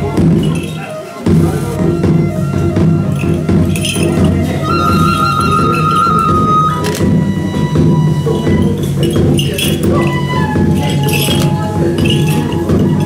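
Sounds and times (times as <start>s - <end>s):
high flute long notes: 0.0s - 13.0s
taiko drum beating: 0.0s - 13.0s.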